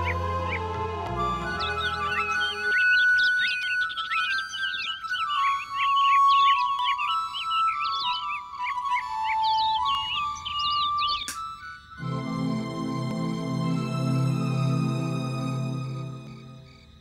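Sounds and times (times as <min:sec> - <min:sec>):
slow descending background melody: 0:00.0 - 0:17.0.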